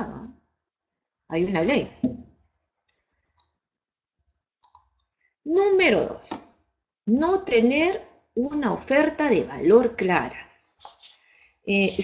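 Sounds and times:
woman's voice: 0:00.0 - 0:00.4, 0:01.3 - 0:02.1, 0:05.5 - 0:06.4, 0:07.1 - 0:10.6, 0:11.6 - 0:12.0.

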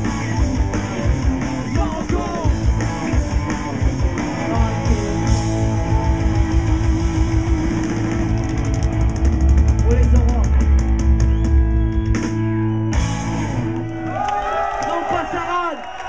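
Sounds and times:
punk rock band playing live: 0:00.0 - 0:13.9
crowd cheering and whooping: 0:05.4 - 0:09.7, 0:10.8 - 0:16.0.

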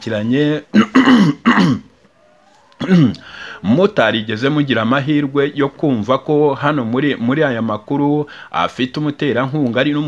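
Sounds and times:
man speaking: 0:00.0 - 0:01.1, 0:02.8 - 0:10.0
man's vocal sound: 0:02.8 - 0:03.9.

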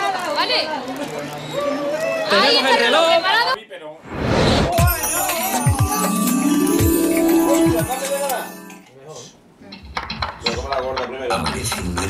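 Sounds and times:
television jingle: 0:04.8 - 0:09.0.

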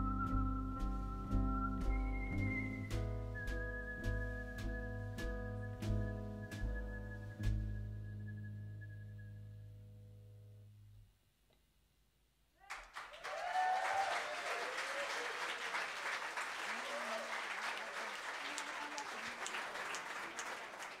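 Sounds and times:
people cheering: 0:12.6 - 0:21.0
audience applause: 0:12.7 - 0:21.0.

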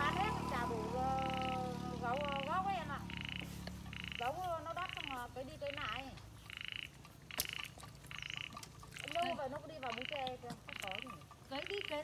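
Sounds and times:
women's voices: 0:00.0 - 0:03.2, 0:04.2 - 0:06.2, 0:09.0 - 0:12.0
frog calling: 0:00.0 - 0:12.0.

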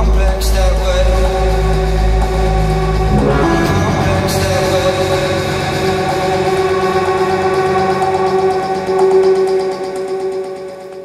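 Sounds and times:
sustained synthesizer tones: 0:02.9 - 0:07.6.

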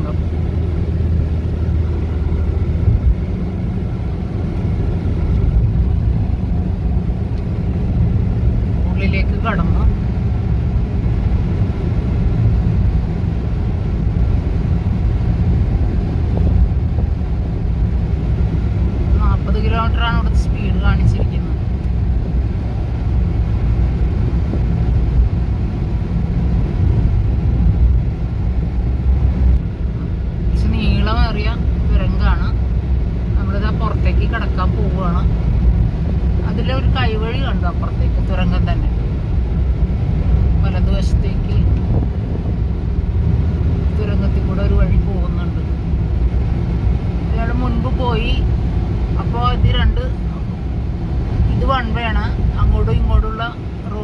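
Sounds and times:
car road and engine rumble: 0:00.0 - 0:54.0
people talking: 0:08.9 - 0:09.9, 0:19.1 - 0:21.6, 0:30.5 - 0:32.6, 0:33.4 - 0:35.3, 0:36.4 - 0:39.0, 0:40.6 - 0:41.7, 0:44.0 - 0:45.7, 0:47.3 - 0:48.4, 0:49.2 - 0:50.4, 0:51.5 - 0:54.0.

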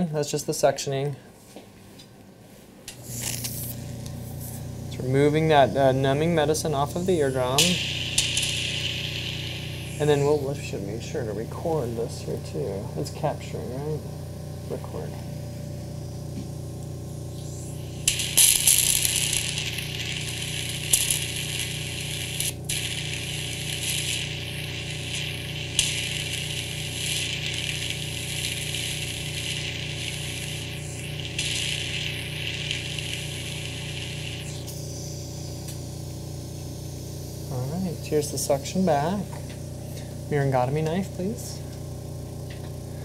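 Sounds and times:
suction unit humming: 0:00.0 - 0:43.0
suction tip hissing: 0:03.0 - 0:12.0, 0:17.3 - 0:40.1.

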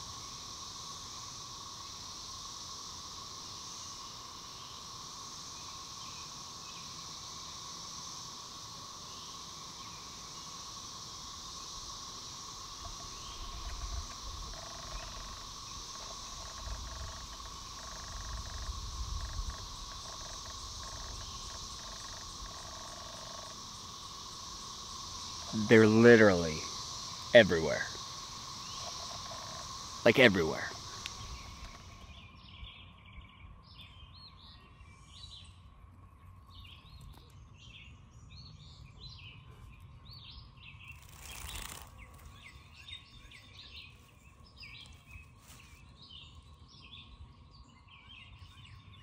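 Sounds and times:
cicadas droning chorus: 0:00.0 - 0:49.0
short pulsing cicada calls: 0:00.0 - 0:49.0.

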